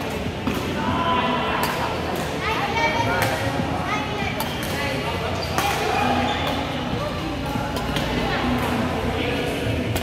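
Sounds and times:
racket hitting shuttlecock: 5.5 - 6.7.

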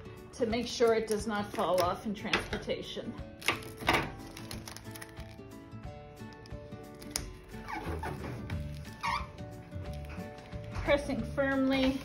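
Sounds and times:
background music with held notes: 0.0 - 12.0
packing tape ripping off roll: 3.3 - 5.6, 6.2 - 10.9.

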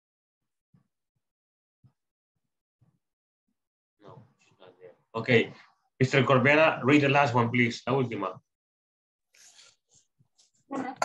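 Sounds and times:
man speaking: 4.1 - 8.4.

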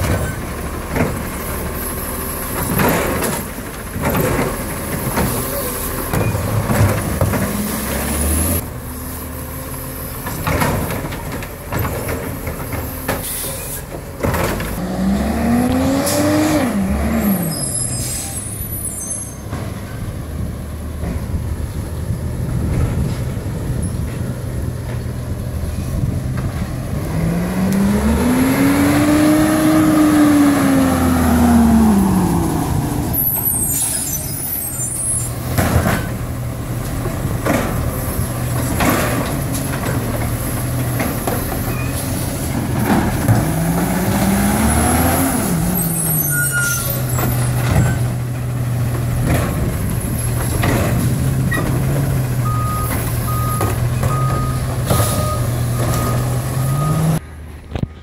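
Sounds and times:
cart knocking and banging: 0.0 - 1.5, 2.5 - 8.6, 10.2 - 14.8, 34.2 - 45.2, 46.7 - 56.8
diesel engine revving and idling: 0.0 - 57.6
air brakes hissing: 13.2 - 13.9, 17.4 - 19.5, 33.2 - 35.4.

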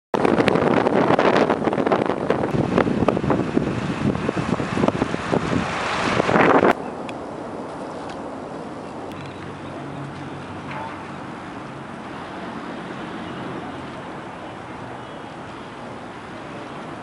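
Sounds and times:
road noise: 0.2 - 17.0
wind buffeting microphone: 0.2 - 17.0.

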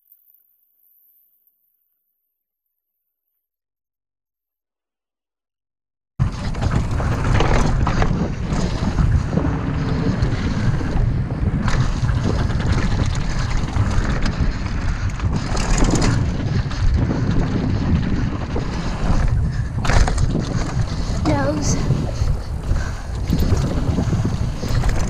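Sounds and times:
bike knocks and rattles: 6.2 - 25.0
wind buffeting microphone: 6.2 - 25.0.

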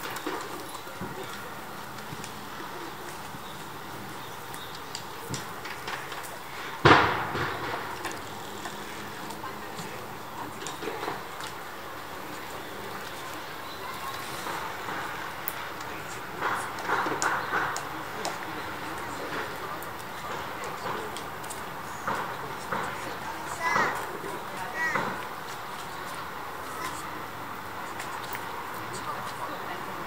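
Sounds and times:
distant people's voices: 0.0 - 30.0.

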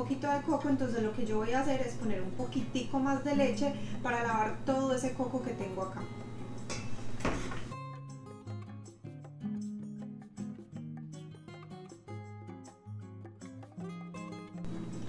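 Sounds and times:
plucked string melody: 7.8 - 15.0.

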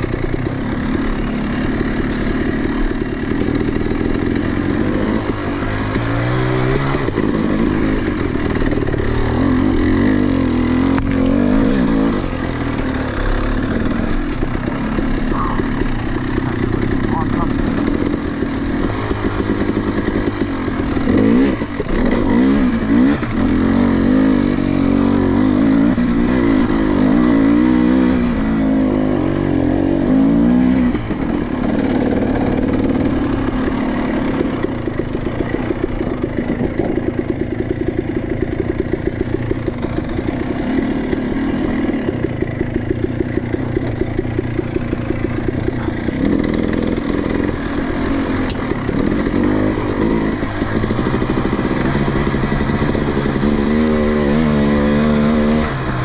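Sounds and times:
dirt bike engine revving: 0.0 - 56.0.

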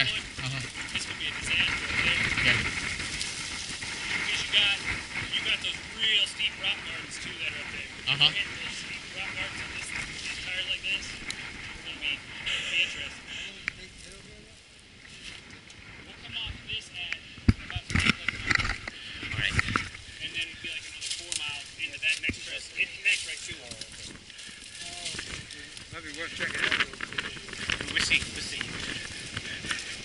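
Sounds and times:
indistinct low talk: 0.0 - 30.0.

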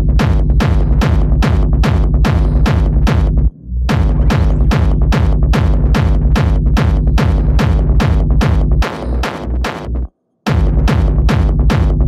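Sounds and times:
hard techno music: 0.0 - 12.0.

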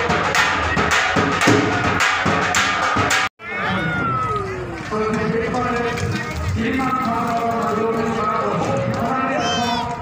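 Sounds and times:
rhythmic knocking beat: 0.0 - 3.3.

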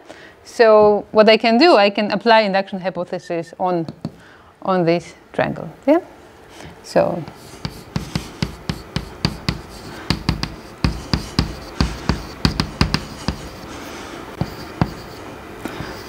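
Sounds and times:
chalk tapping on chalkboard: 7.3 - 16.0.

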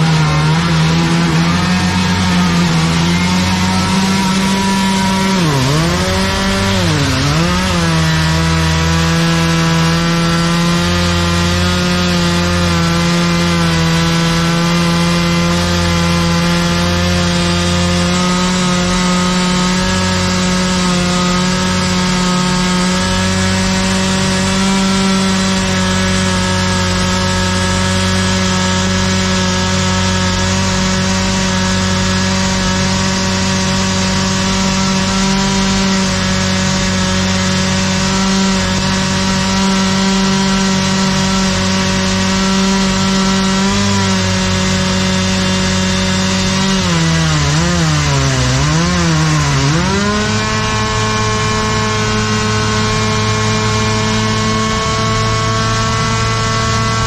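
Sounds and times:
droning hum: 0.0 - 17.2.

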